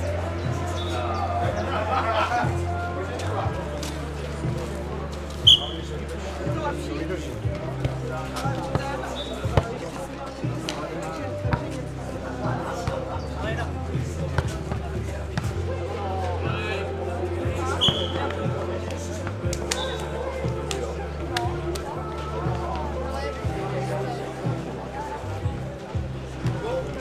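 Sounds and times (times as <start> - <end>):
players' voices: 0.0 - 27.0.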